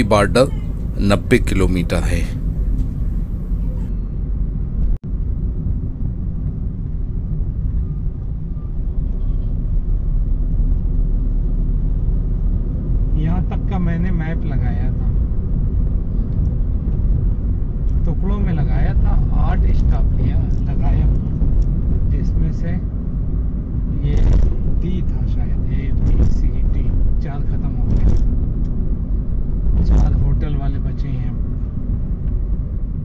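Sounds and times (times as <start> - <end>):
car road and engine rumble: 0.0 - 33.0.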